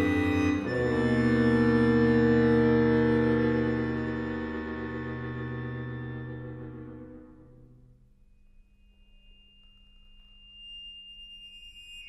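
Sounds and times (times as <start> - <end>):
accordion high sustained note: 0.0 - 11.8.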